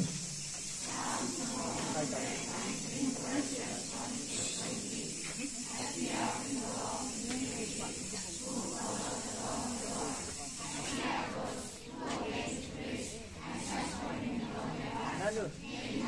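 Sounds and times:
children reciting in unison: 0.0s - 16.0s.

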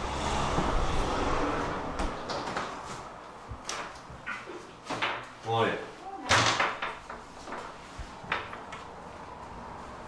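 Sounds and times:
person calling out: 5.7s - 6.3s
door banging shut: 6.3s - 7.1s.

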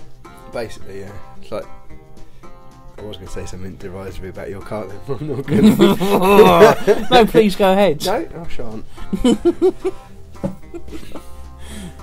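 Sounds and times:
plucked guitar background music: 0.0s - 12.0s
man laughing: 5.2s - 7.4s, 9.0s - 10.0s, 10.6s - 12.0s.

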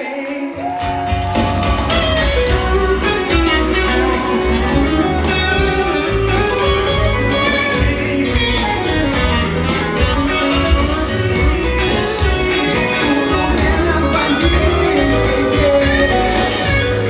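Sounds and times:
live band music: 0.0s - 17.0s
electric guitar playing: 0.6s - 17.0s.

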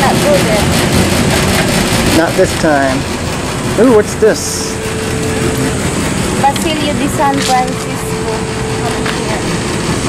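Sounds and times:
outdoor background hum: 0.0s - 10.0s
faint voices talking: 2.1s - 10.0s.

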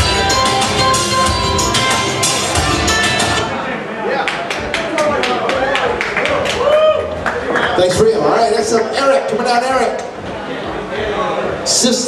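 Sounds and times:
karaoke backing track: 0.0s - 12.0s
audience clapping: 4.2s - 8.0s.

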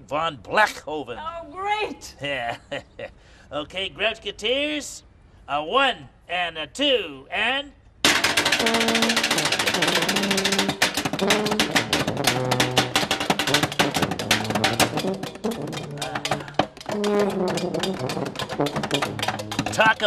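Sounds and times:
clattering strikes on metal cans: 8.0s - 20.0s
horn notes: 8.4s - 20.0s.

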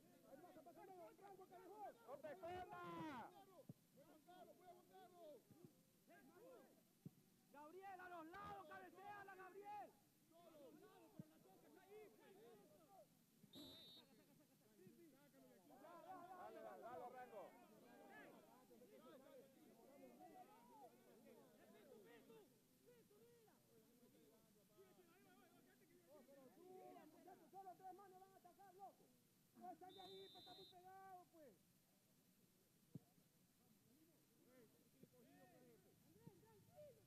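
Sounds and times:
faint shouting of players: 0.0s - 6.8s, 7.5s - 23.5s, 24.7s - 31.6s
referee's whistle blast: 13.5s - 14.1s, 29.8s - 30.8s.

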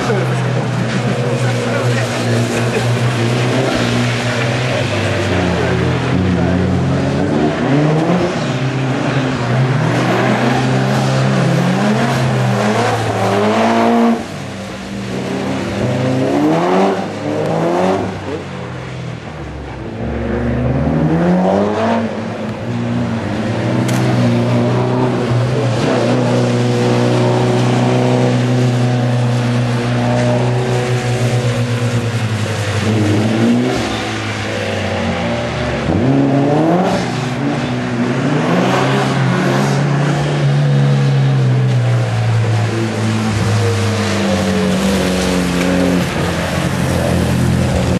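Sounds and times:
car engine revving: 0.0s - 47.9s
water spray off tyres: 41.9s - 47.9s.

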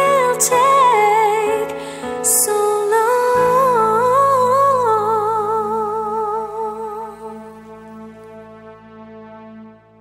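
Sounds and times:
sustained low chord: 3.2s - 10.0s.

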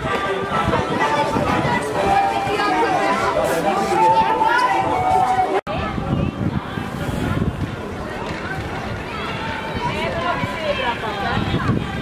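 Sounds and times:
children chattering and calling out: 0.0s - 12.0s
outdoor street noise: 0.0s - 12.0s.

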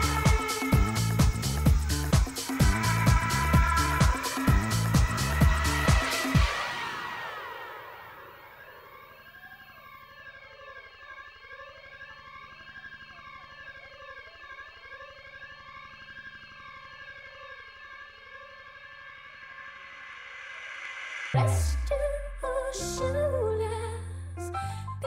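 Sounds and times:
sweeping electronic synth: 0.0s - 25.0s.

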